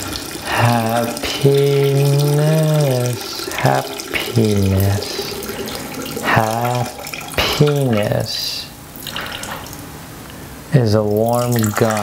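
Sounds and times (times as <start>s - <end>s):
tap water running into sink: 0.0s - 8.2s.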